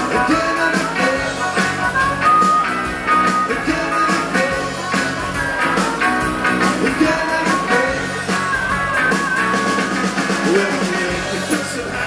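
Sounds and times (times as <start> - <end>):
live rock band: 0.0 - 12.0.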